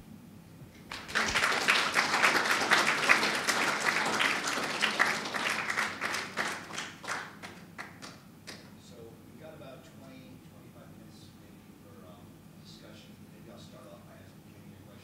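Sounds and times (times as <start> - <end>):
audience applauding: 0.8 - 8.6.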